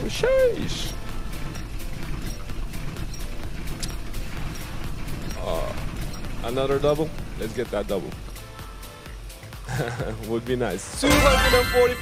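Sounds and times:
game show background music: 0.0s - 12.0s
money wheel pointer clicking: 0.6s - 7.0s.

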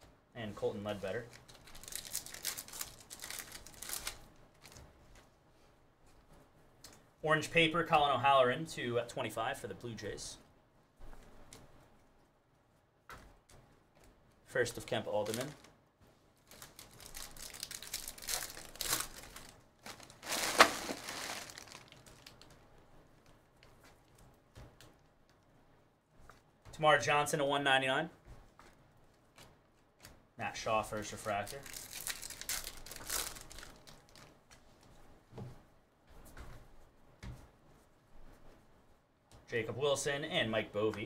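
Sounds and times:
wrapper being torn and crinkled: 1.3s - 4.8s, 15.2s - 15.7s, 16.4s - 22.6s, 31.3s - 34.4s.

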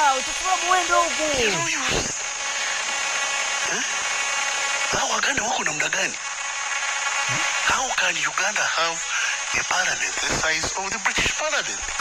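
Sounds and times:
person speaking: 0.0s - 2.2s, 7.3s - 11.7s.

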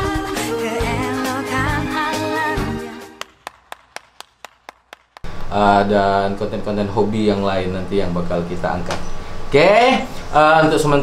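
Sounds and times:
music: 0.0s - 3.3s
person clapping slowly: 3.1s - 5.3s.

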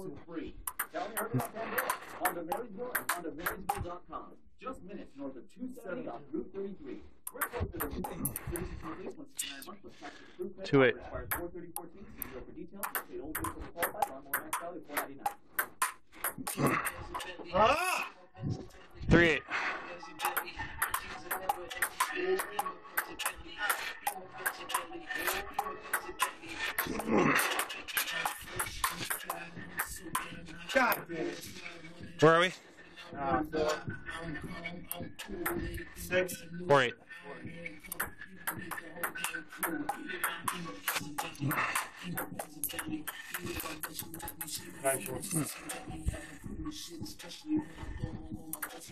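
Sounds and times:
background voices: 0.0s - 48.9s
table tennis ball clicking: 0.7s - 3.8s, 12.8s - 16.6s, 20.2s - 24.6s, 37.9s - 44.4s.

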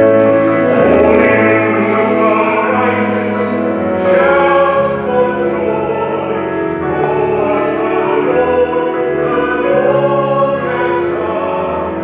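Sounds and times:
choir singing: 0.0s - 12.0s
musical accompaniment: 0.0s - 12.0s.

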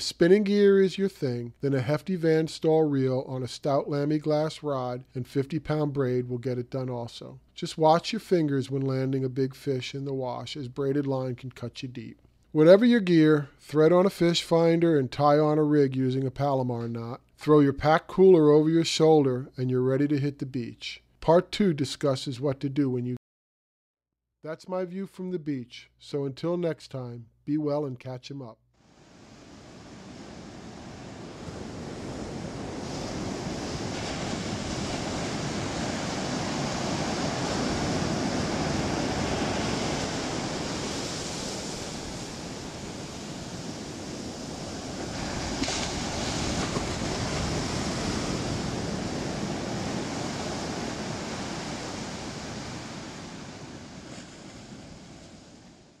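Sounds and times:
ocean surf washing up beach: 0.0s - 7.0s, 28.8s - 56.0s.

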